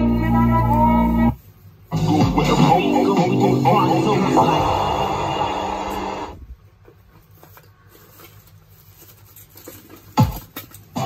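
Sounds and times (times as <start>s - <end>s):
music through car stereo loudspeaker: 0.0s - 6.4s.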